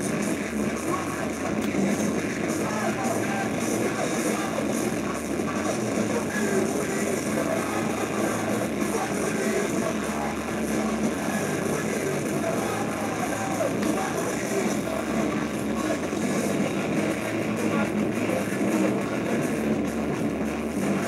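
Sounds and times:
distorted electric guitars: 0.0 - 21.0
drums: 0.0 - 21.0.

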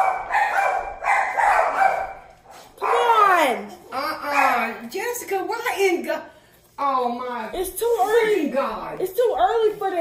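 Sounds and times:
dog barking: 0.0 - 3.2.

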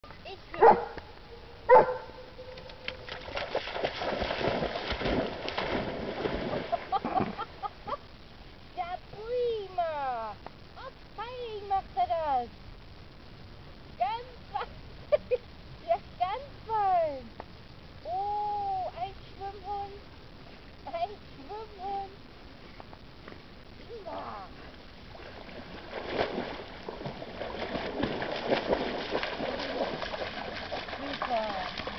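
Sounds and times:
dog barking: 0.6 - 1.0, 1.7 - 2.6
water splashing and churning: 2.8 - 7.6, 25.0 - 31.9.

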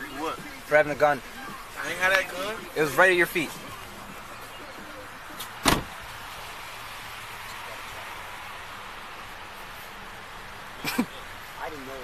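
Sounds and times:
car door slamming: 5.4 - 6.0.

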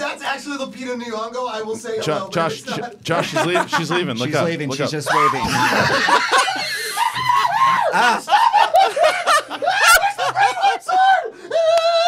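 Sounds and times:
people laughing hard: 2.5 - 4.5, 5.1 - 12.0.

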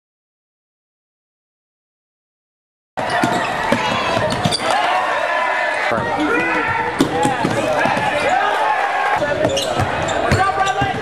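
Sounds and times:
voices of players and spectators: 3.0 - 11.0.

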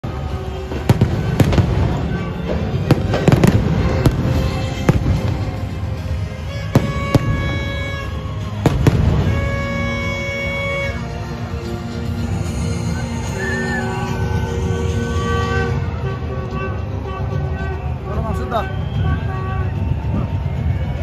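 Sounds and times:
crowd din: 0.0 - 21.0
music over sound system: 0.0 - 21.0.

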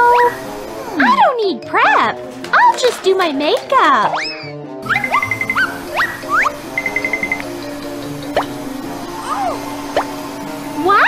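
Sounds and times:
light background music: 0.0 - 11.0
rapid trills: 4.8 - 11.0.

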